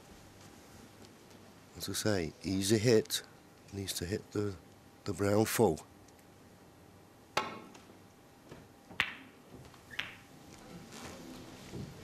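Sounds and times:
snooker balls clicking: 0:08.5 - 0:10.3
cue tip striking ball: 0:08.9 - 0:10.3.

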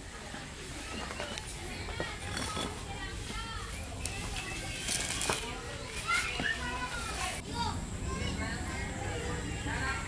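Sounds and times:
children's voices and chatter: 0:00.0 - 0:10.0.

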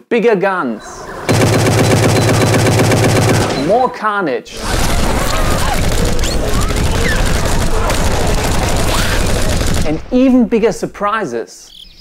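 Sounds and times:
automatic rifle fire: 0:01.3 - 0:03.7, 0:04.6 - 0:10.0.

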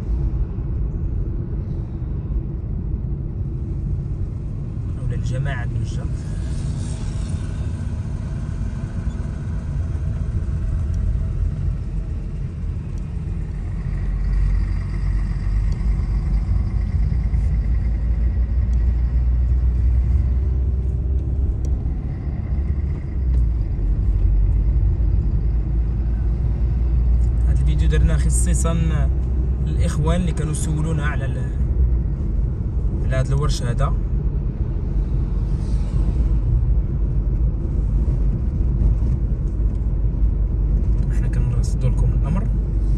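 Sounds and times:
car engine and tyres rumbling: 0:00.0 - 0:42.9.

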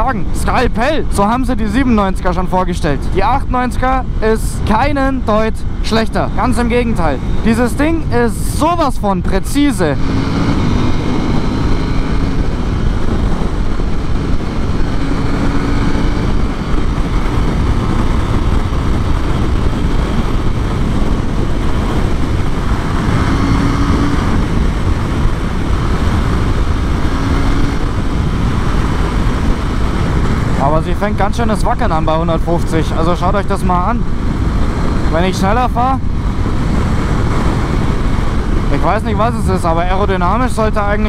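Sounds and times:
motorcycle engine droning: 0:00.0 - 0:41.0
wind noise on microphone: 0:00.0 - 0:41.0.

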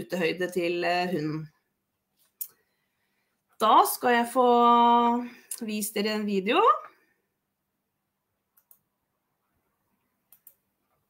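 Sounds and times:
computer mouse clicks: 0:08.5 - 0:08.9, 0:10.2 - 0:11.0.

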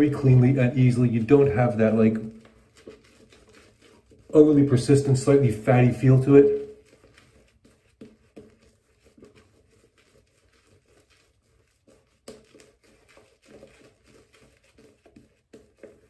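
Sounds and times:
shaving brush swishing: 0:00.0 - 0:16.0.

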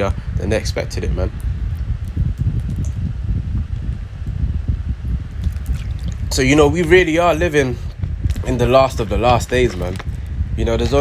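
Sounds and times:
low unsteady rumbling: 0:00.0 - 0:11.0.

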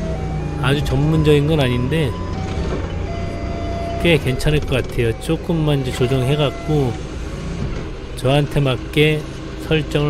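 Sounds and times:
forklift engine idling: 0:00.0 - 0:09.8.

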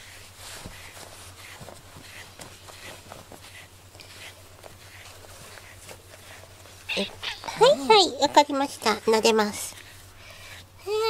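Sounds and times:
brushing cat fur: 0:00.0 - 0:11.0.

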